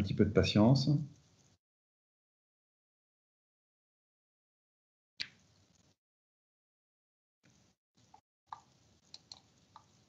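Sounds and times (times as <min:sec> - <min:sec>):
faint hiss: 0:00.0 - 0:01.6
computer mouse clicks: 0:07.5 - 0:10.0.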